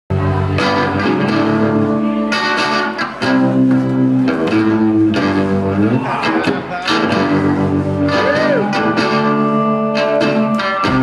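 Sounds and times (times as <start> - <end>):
bass: 0.1 - 11.0
drums: 0.1 - 11.0
strummed guitar: 0.1 - 11.0.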